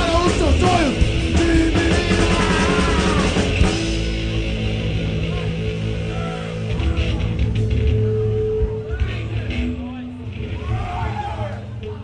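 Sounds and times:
punk band playing: 0.0 - 12.0
person shouting: 1.9 - 3.4.

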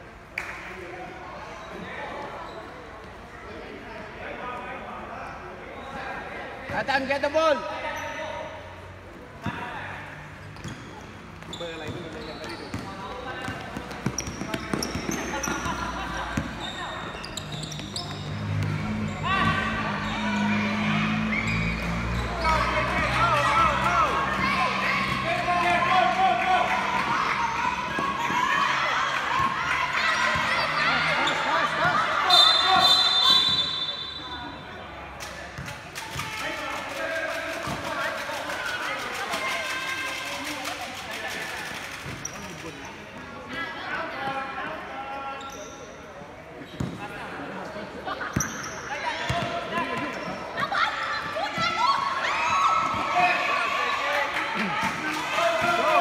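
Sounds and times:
basketball bouncing on court: 10.6 - 18.9, 48.3 - 50.4
children calling and shouting: 18.4 - 32.8, 50.5 - 56.0.

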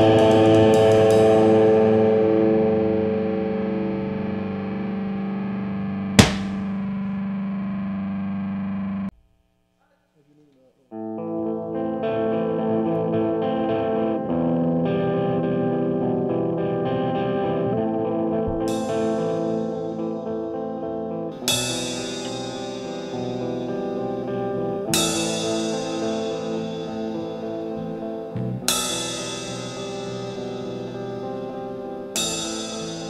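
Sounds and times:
distorted electric guitar chords: 0.0 - 6.8, 11.0 - 33.0
sharp click: 6.2 - 6.7.

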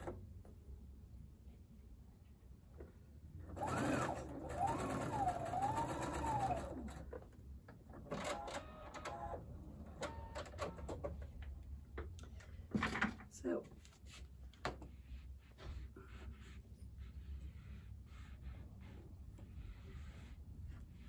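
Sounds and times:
sewing machine motor whine: 3.6 - 7.0.

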